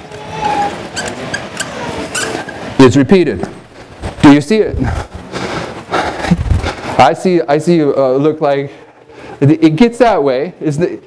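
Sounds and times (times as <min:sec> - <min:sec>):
marker squeaking on whiteboard: 0:00.0 - 0:02.7.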